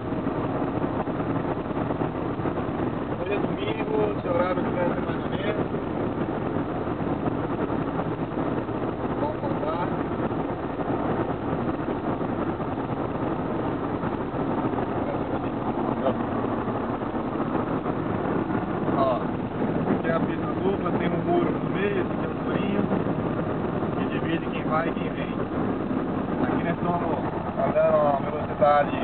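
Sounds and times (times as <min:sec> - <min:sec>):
car road and engine noise: 0:00.0 - 0:29.0.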